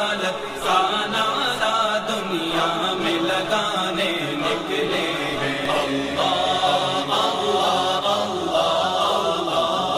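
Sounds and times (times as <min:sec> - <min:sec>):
chorus of voices chanting: 0:00.0 - 0:09.9.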